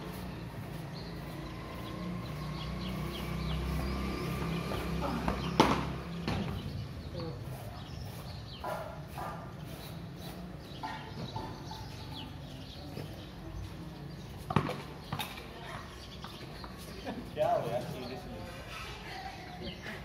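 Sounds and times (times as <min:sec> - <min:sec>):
cricket bat hitting ball: 0:05.6 - 0:06.4.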